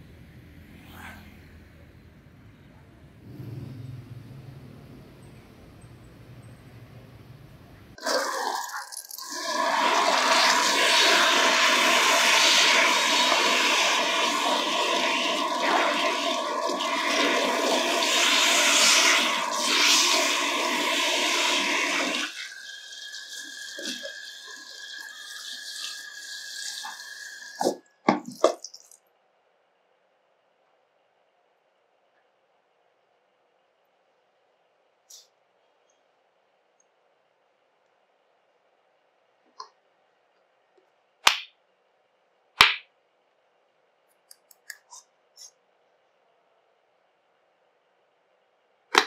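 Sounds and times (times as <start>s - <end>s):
shower head spraying water on hair: 9.2s - 28.6s.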